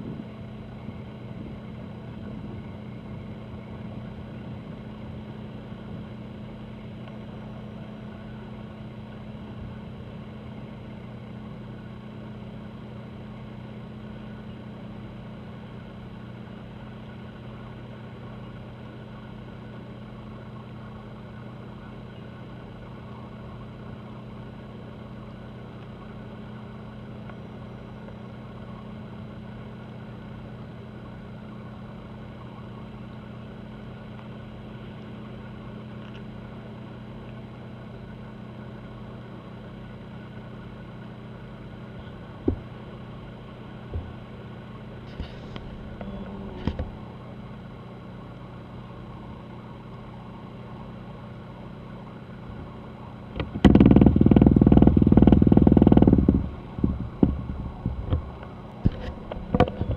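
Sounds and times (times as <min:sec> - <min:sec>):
ship engines droning: 0:00.0 - 0:59.9.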